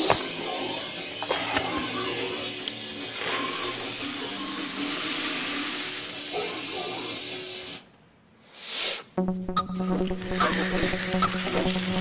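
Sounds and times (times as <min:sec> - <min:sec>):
faint low tones: 0:09.2 - 0:12.0.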